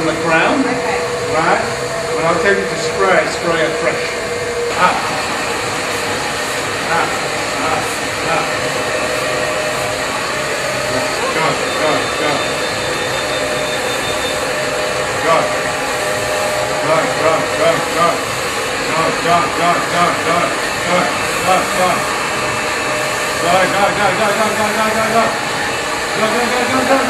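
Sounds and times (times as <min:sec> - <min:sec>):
hair dryer blowing: 0:00.0 - 0:27.0.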